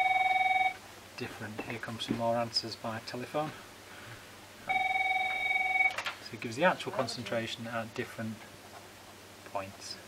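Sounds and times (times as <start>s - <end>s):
telephone ringing: 0.0s - 0.8s, 4.7s - 6.1s.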